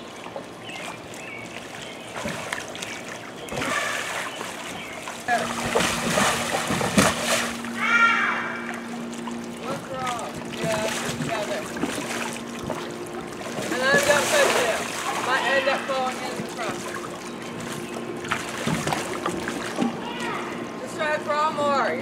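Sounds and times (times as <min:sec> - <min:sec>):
pool water splashing: 0:00.0 - 0:22.0
voices calling out: 0:07.6 - 0:22.0.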